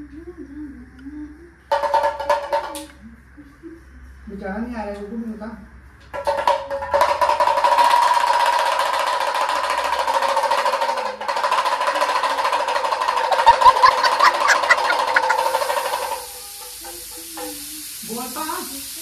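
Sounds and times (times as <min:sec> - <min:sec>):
hand drum rattling: 0:01.7 - 0:02.8, 0:06.1 - 0:17.6.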